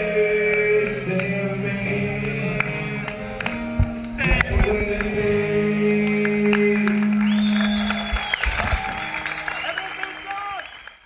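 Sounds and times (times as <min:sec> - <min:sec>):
person singing with acoustic guitar: 0:00.0 - 0:07.3
crowd noise: 0:03.1 - 0:11.0
noisy clatter: 0:08.1 - 0:09.0.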